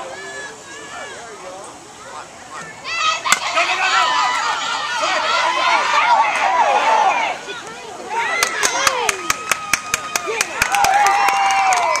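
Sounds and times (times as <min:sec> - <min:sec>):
people shouting: 0:02.8 - 0:12.0
spectators clapping: 0:08.3 - 0:12.0.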